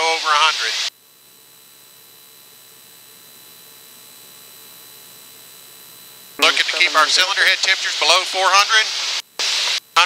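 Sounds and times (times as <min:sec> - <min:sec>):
faint thin whine tones: 0:00.9 - 0:08.0
electronic hiss: 0:05.5 - 0:10.0.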